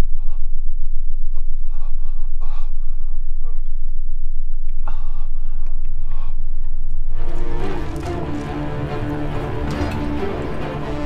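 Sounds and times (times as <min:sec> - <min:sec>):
steady deep rumble: 0:00.0 - 0:11.0
man breathing heavily: 0:01.2 - 0:03.6, 0:04.8 - 0:06.8.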